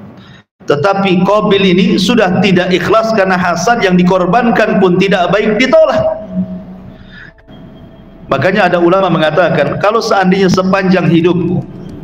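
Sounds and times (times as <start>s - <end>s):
man talking: 0.7s - 6.3s, 8.3s - 11.7s
thin steady tone: 6.2s - 9.9s.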